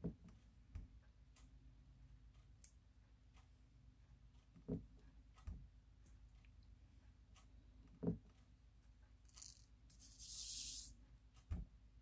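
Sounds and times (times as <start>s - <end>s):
beads rattling in plastic tray: 9.3s - 10.9s.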